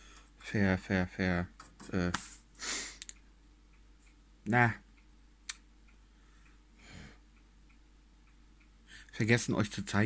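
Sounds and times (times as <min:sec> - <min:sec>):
faint soft ticking: 0:03.0 - 0:10.0
soft breath: 0:06.0 - 0:07.4, 0:08.8 - 0:09.2.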